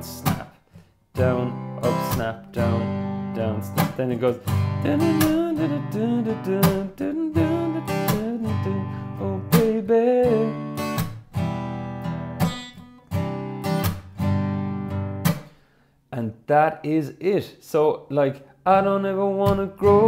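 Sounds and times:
acoustic guitar strumming: 0:00.0 - 0:15.7, 0:18.7 - 0:20.0
hand slapping guitar strings: 0:00.2 - 0:00.6, 0:03.8 - 0:05.6, 0:08.0 - 0:08.5, 0:09.5 - 0:09.8, 0:10.9 - 0:11.3, 0:13.7 - 0:14.2, 0:15.2 - 0:15.6.

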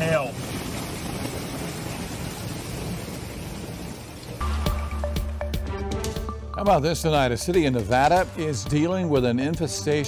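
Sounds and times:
hail falling hiss: 0:00.0 - 0:06.2.

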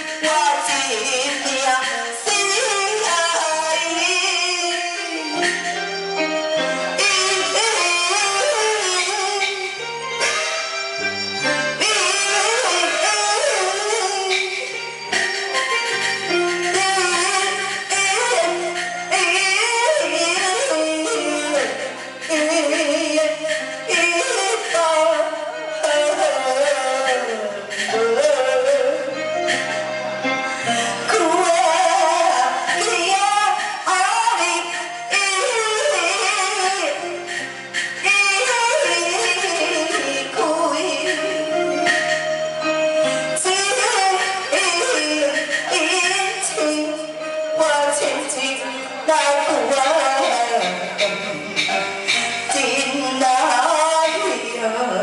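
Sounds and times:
woman singing through microphone: 0:00.0 - 0:11.0, 0:11.7 - 0:29.7, 0:30.6 - 0:55.0
low instrumental accompaniment: 0:00.0 - 0:55.0.

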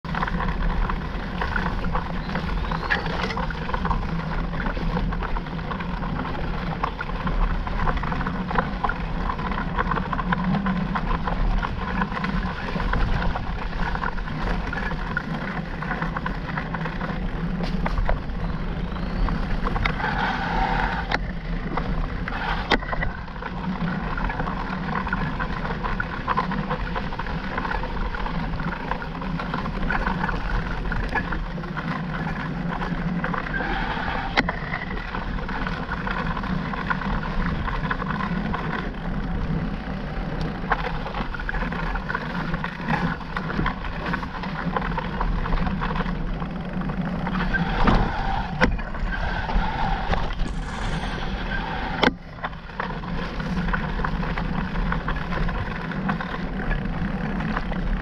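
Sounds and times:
bike tyres rumbling on dirt trail: 0:00.0 - 0:58.0.

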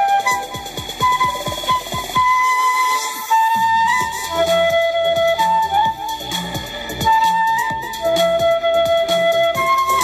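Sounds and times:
steady kick drum: 0:00.0 - 0:02.6, 0:03.5 - 0:10.0
electronic dance-pop backing track: 0:00.0 - 0:10.0
flute playing short notes: 0:00.0 - 0:10.0.

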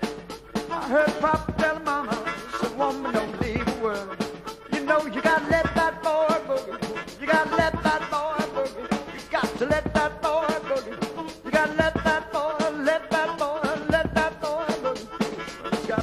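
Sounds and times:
blues-rock band playing: 0:00.0 - 0:16.0.

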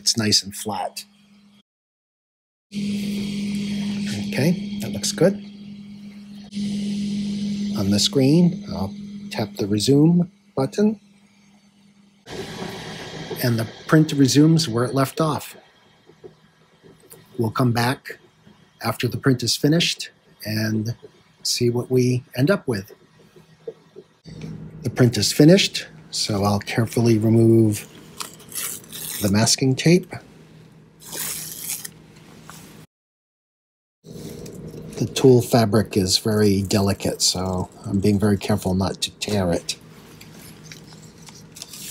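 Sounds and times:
printer fans whirring: 0:02.8 - 0:11.3, 0:11.9 - 0:30.0, 0:34.1 - 0:41.9
masking tape peeling off: 0:28.2 - 0:29.5, 0:31.0 - 0:32.0.

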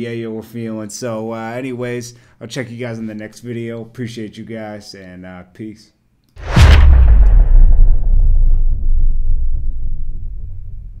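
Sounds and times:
deep rumbling boom: 0:06.4 - 0:11.0.

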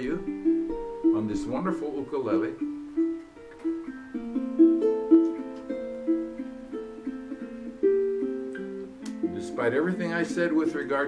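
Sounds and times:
ukulele fingerpicked: 0:00.0 - 0:11.0.

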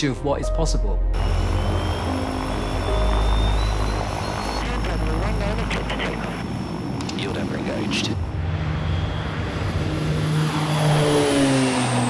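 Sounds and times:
turboprop engines droning: 0:01.1 - 0:12.0
thin high whine: 0:01.2 - 0:12.0.

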